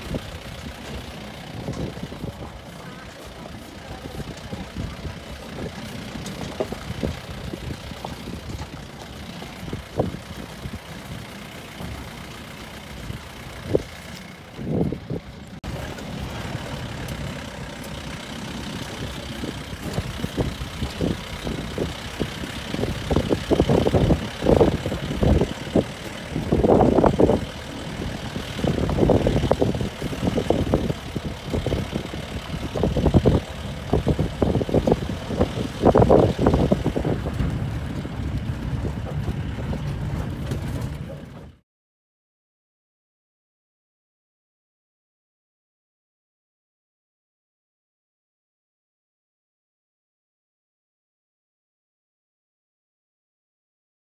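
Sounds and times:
jeep engine running: 0:00.0 - 0:41.6
vehicle thumping and rattling: 0:00.0 - 0:41.6.

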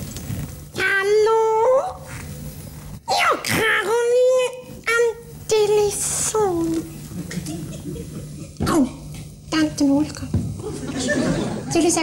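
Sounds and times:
high-pitched puppet voice: 0:03.1 - 0:06.9.

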